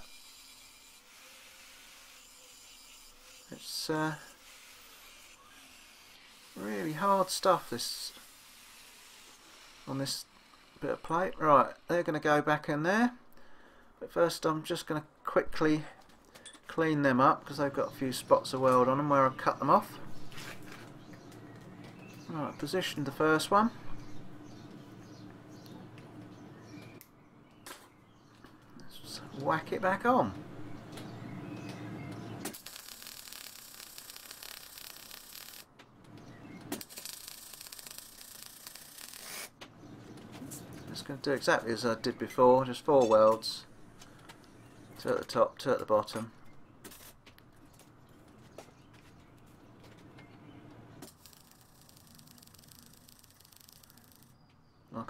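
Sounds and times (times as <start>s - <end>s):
welding torch clicks: 31.6s - 39.5s, 51.0s - 54.4s
welding arc crackling: 31.7s - 39.6s, 51.0s - 54.4s.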